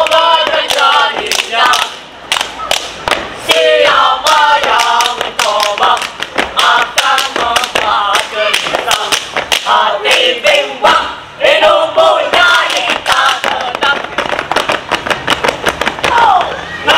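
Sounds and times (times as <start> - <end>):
hand claps and foot stamps: 0.0 - 3.6, 4.6 - 10.3, 12.3 - 16.5
boys chanting a cheer: 0.0 - 14.0.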